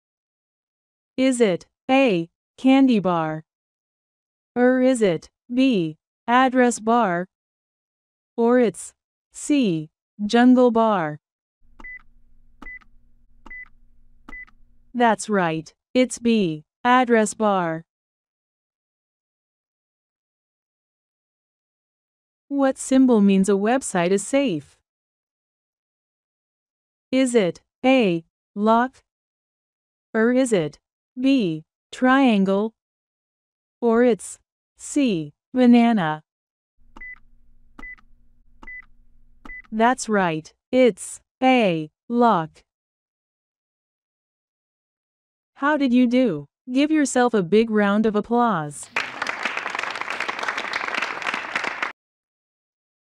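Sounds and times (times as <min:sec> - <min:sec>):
countdown ticks with high beeps: 0:11.8 - 0:14.6, 0:37.0 - 0:39.8.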